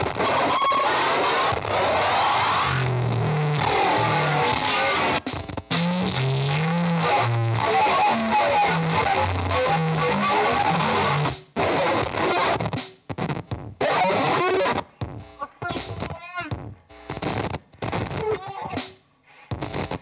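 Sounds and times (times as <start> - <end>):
harsh distorted noise music: 0.0 - 20.0.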